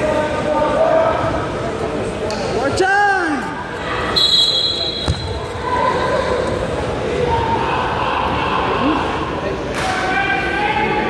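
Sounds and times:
spectators' voices: 0.0s - 11.0s
referee's whistle: 4.2s - 5.4s.

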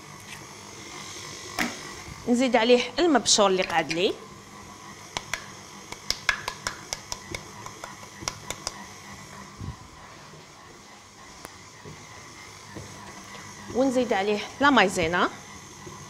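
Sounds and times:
utensil tapping glass bowl: 6.0s - 8.8s.

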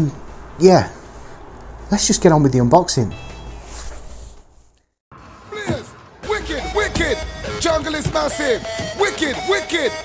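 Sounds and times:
man's voice: 5.5s - 10.0s.

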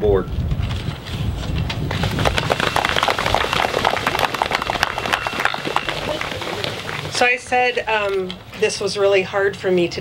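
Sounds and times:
audience applauding: 2.1s - 7.2s.

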